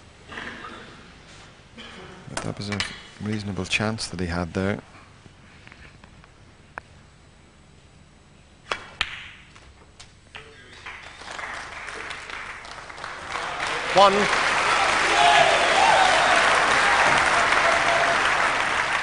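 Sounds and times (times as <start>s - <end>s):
audience applause: 10.6s - 19.0s.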